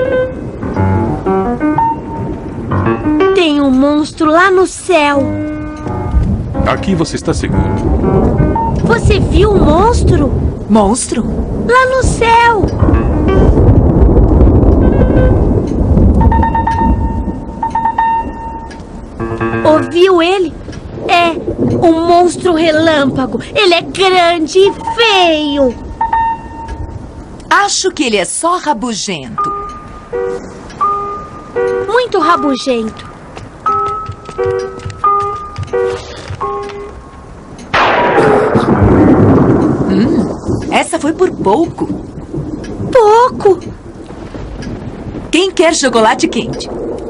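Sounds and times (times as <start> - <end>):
background music: 0.0 - 10.6, 16.3 - 20.7, 29.3 - 38.4
thunder rumbling: 0.0 - 47.0.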